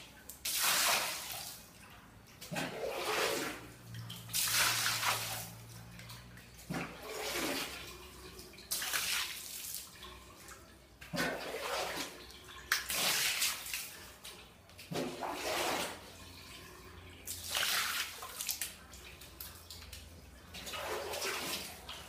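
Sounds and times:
water splashing on tiled floor: 0.0 - 22.0.

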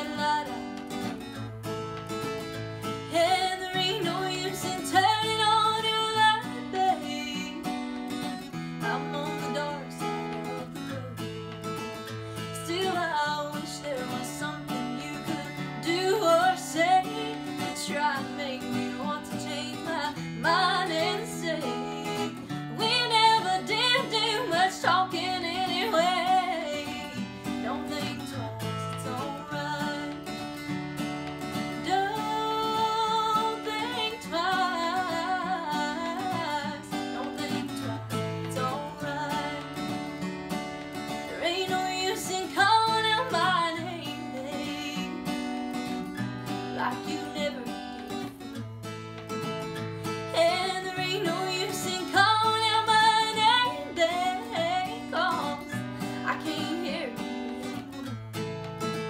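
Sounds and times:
woman singing: 0.0 - 48.6, 49.6 - 58.2
acoustic guitar strumming: 0.0 - 59.0.

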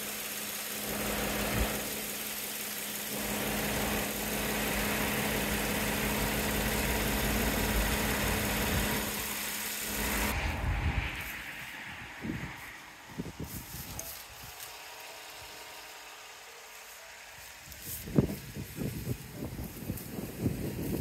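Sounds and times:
truck engine idling: 0.0 - 10.3.

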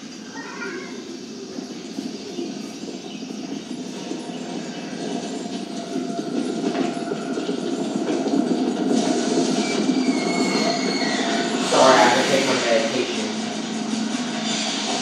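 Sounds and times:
rumbling trailer score: 3.6 - 15.0.

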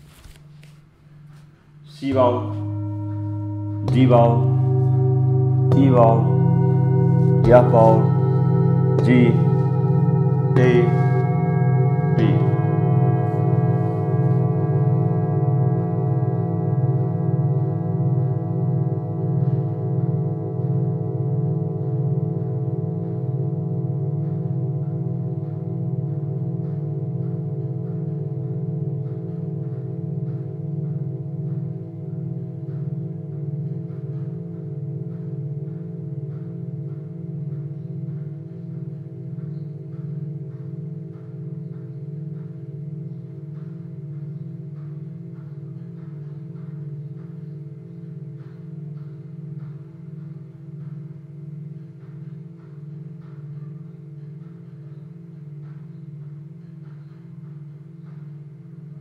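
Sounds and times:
metal singing bowls struck: 1.9 - 59.0.

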